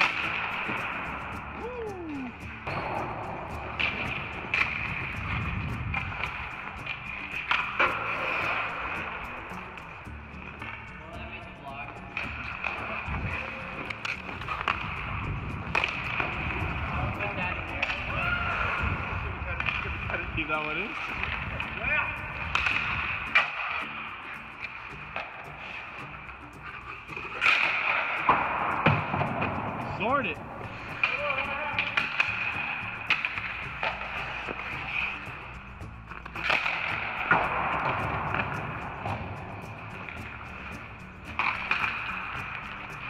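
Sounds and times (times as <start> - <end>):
skate blades scraping on ice: 0.0 - 11.3, 12.1 - 43.0
sticks and pucks knocking on ice: 12.1 - 23.8, 27.1 - 43.0.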